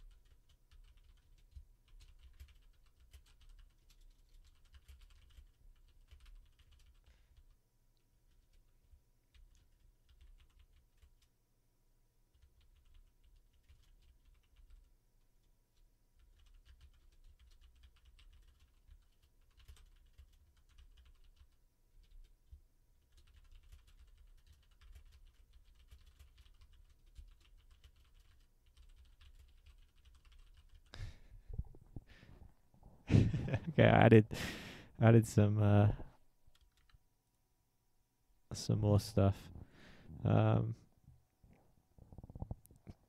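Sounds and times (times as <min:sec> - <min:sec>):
typing on keyboard: 0:00.0 - 0:07.6, 0:08.3 - 0:08.7, 0:09.3 - 0:11.3, 0:12.3 - 0:14.9, 0:15.7 - 0:30.9, 0:36.5 - 0:37.0.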